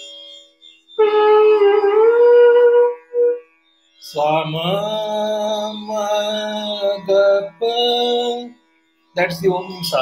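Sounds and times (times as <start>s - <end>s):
faint steady drone tone: 0.0s - 10.0s
bamboo flute playing: 0.9s - 3.6s
man singing: 4.0s - 8.6s, 9.2s - 10.0s.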